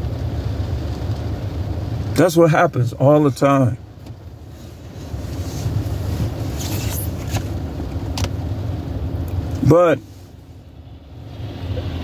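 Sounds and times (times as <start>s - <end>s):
car interior rumble: 0.0s - 12.0s.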